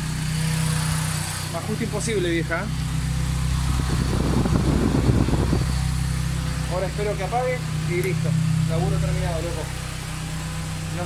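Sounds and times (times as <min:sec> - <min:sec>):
car engine idling: 0:00.0 - 0:11.0
radiator cooling fan running: 0:00.0 - 0:11.0.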